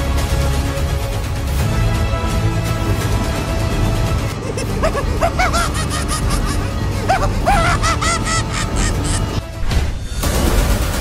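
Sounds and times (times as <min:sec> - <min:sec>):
high-pitched cackling laugh: 0:04.3 - 0:09.4.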